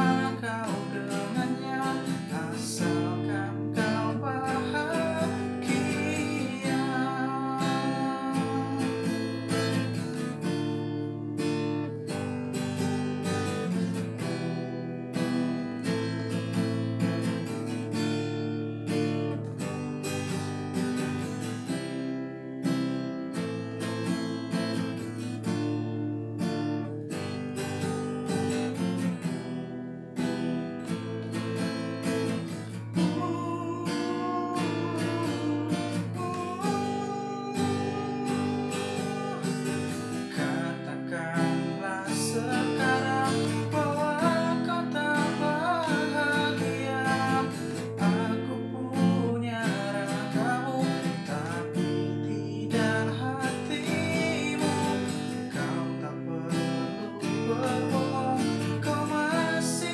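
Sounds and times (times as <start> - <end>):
acoustic guitar strummed and picked: 0.0 - 59.9.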